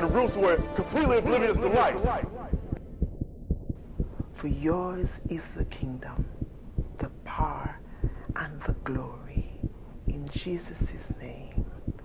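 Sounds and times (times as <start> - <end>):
low regular thumping pulse: 0.8 - 12.0.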